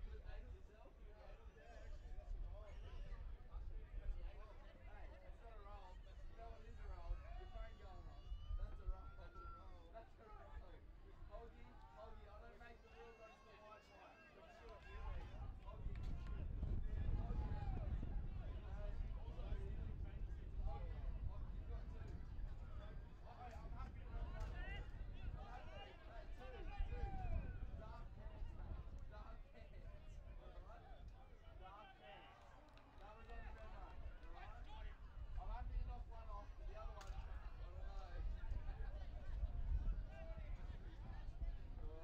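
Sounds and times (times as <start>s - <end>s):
wind rumbling on microphone: 1.8s - 9.8s, 14.9s - 31.6s, 33.1s - 42.0s.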